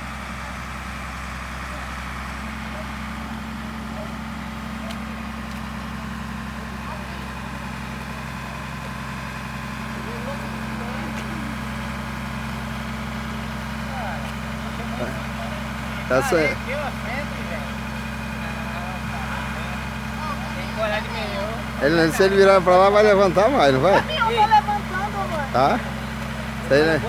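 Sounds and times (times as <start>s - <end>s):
crane engine humming steadily: 0.0s - 27.0s.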